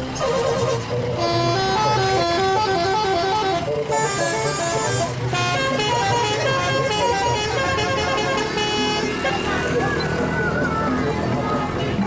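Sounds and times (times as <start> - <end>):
train engine humming: 0.0 - 11.8.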